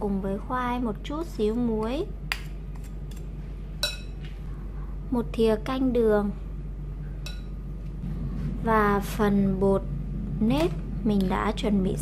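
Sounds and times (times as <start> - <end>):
low hum: 0.0 - 12.0
metal spoon clinking on a bowl: 3.8 - 4.2, 7.2 - 7.5.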